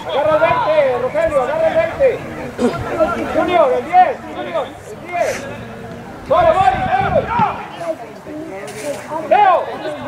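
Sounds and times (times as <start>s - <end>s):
men shouting calls: 0.0s - 5.5s, 6.3s - 7.8s.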